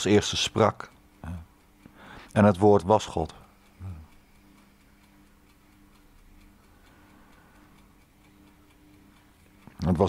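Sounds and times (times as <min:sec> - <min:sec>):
clock ticking: 0:00.0 - 0:10.0
low steady hum: 0:00.0 - 0:10.0.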